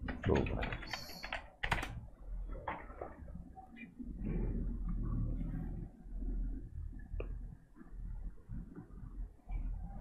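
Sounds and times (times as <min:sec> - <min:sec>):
computer keyboard typing: 0:00.0 - 0:02.0.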